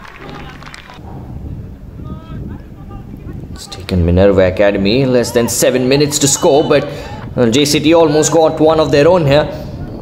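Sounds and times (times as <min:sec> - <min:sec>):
steady low rumble: 0:00.0 - 0:05.4.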